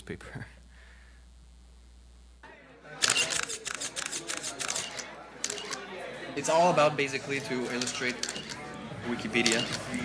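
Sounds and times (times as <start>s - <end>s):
camera shutters clicking rapidly: 3.0s - 5.9s, 7.7s - 8.6s, 9.4s - 10.0s.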